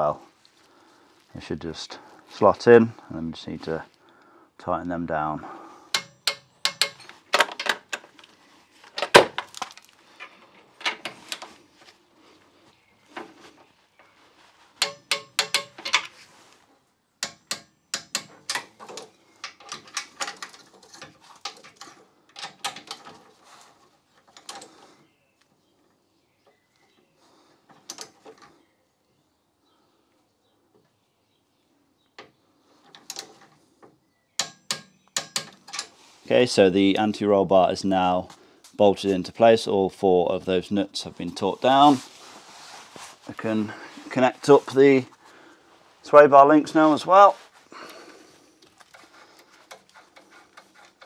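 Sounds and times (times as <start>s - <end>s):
metal knocks of tool on fittings: 5.9s - 7.1s, 14.8s - 16.1s, 17.2s - 20.4s, 34.4s - 35.9s.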